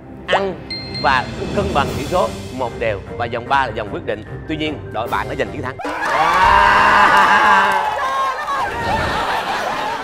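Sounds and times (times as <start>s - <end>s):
group cheering and shrieking: 5.8s - 10.0s.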